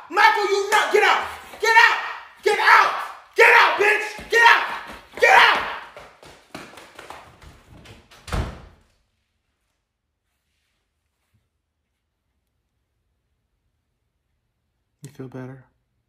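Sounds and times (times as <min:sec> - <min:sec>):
person's excited voice: 0:00.0 - 0:06.0.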